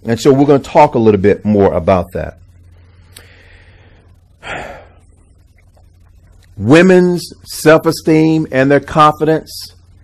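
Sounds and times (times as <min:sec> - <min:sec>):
low steady hum: 0:00.0 - 0:10.0
man breathing in: 0:02.9 - 0:05.1.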